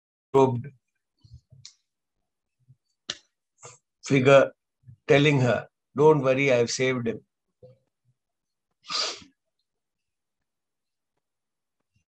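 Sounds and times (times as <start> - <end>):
man's sharp breath: 8.9 - 9.2.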